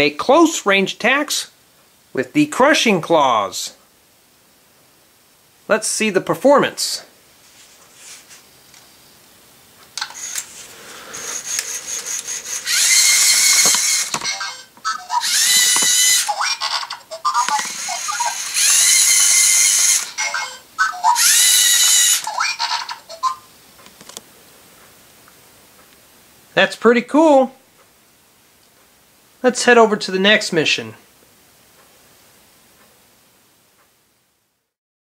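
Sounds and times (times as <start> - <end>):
speaker hiss: 0.0 - 22.2, 22.9 - 34.8
robot motors and gears clicking: 12.6 - 14.4, 15.2 - 16.3, 17.4 - 20.1.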